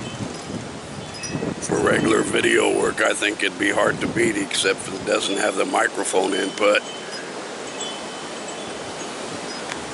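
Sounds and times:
faint high tinkling tones: 0.0 - 2.5, 6.4 - 9.8
outdoor background hiss: 0.0 - 9.9.

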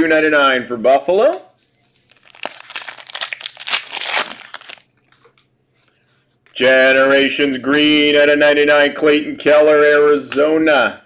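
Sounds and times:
foil wrapper crinkling: 1.6 - 5.2.

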